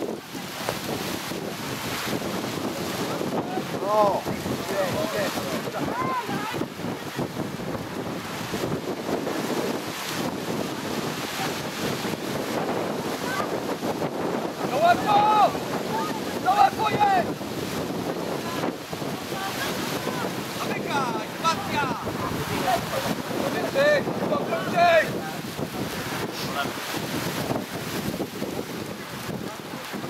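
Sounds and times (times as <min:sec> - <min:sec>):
wind buffeting microphone: 0:00.0 - 0:30.0
people shouting calls: 0:05.8 - 0:06.6, 0:14.6 - 0:17.3.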